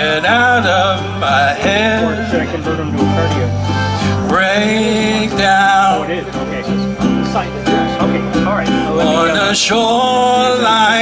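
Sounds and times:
accordion melody: 0.0s - 11.0s
electric bass: 0.0s - 11.0s.

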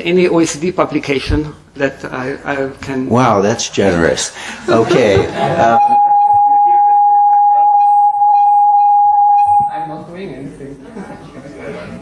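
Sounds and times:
microphone feedback ringing tone: 5.8s - 10.0s.

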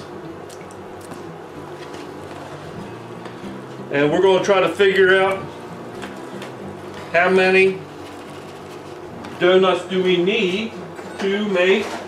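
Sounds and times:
steady low hum: 0.0s - 11.6s.

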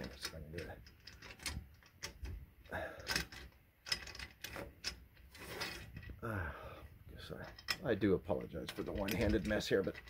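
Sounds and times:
metallic clicks of door hanger: 0.0s - 6.2s, 7.3s - 10.0s.

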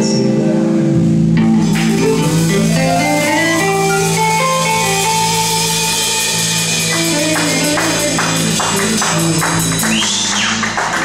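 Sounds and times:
bass guitar: 0.0s - 11.0s
drums: 0.0s - 11.0s
electric guitar: 0.0s - 11.0s
stage keyboard chords: 0.0s - 11.0s.

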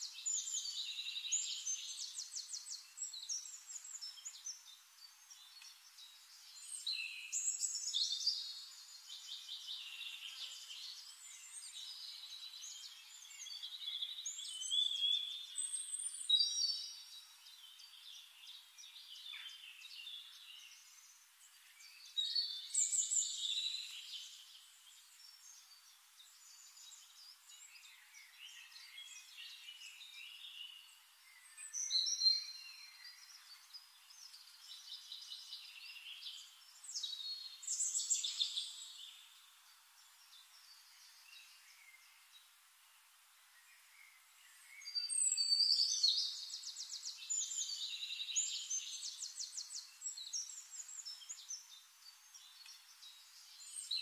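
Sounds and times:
small birds chirping and trilling: 0.0s - 54.0s.

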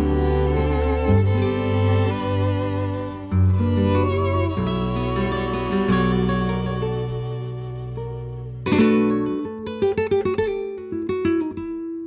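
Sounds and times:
acoustic guitar strumming and plucking: 0.0s - 12.0s.

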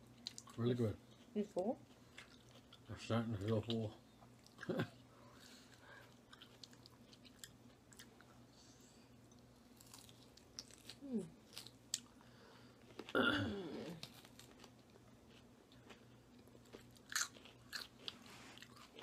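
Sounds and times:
chewing and crunching salad: 0.1s - 8.6s, 9.2s - 13.2s, 13.9s - 19.0s.

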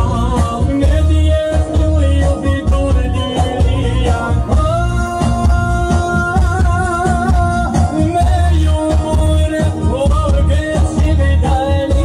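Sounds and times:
band with heavy bass: 0.0s - 12.0s.

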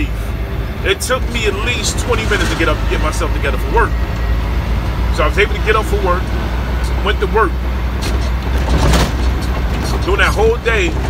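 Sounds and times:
truck engine rumble in cab: 0.0s - 11.0s.

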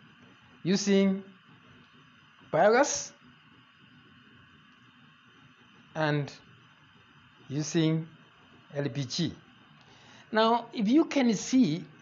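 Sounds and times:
gas burner flame hissing: 0.0s - 12.0s.

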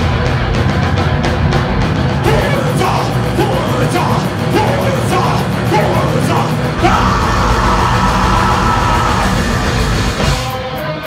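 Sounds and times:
distorted electric guitar and bass: 0.0s - 11.0s.

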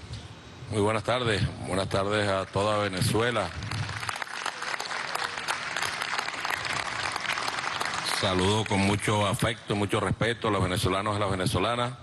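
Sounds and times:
people applauding: 2.1s - 9.4s.

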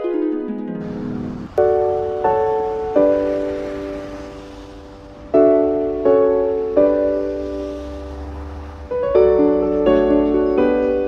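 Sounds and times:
piano chord ringing: 0.0s - 11.0s.

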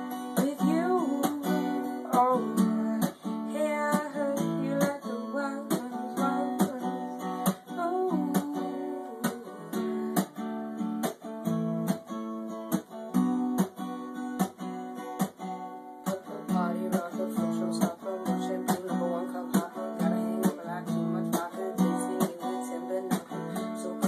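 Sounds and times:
acoustic guitar strumming: 0.0s - 24.0s.

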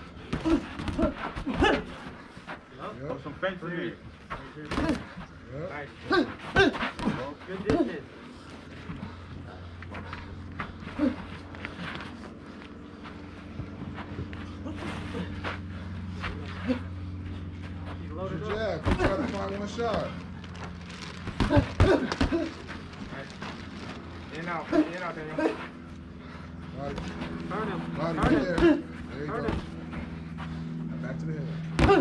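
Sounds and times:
steady low hum: 0.0s - 32.0s
gloves thudding and footwork scuffs: 18.4s - 20.1s
people shouting: 31.8s - 32.0s.

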